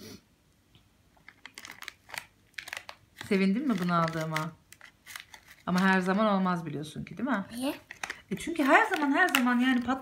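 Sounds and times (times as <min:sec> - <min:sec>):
paper packet crinkling: 0:01.2 - 0:06.5, 0:07.6 - 0:10.0.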